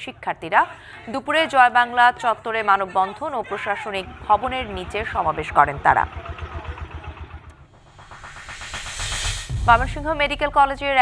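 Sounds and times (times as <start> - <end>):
street ambience: 0.0 - 11.0
vehicle engine idling: 3.7 - 10.2.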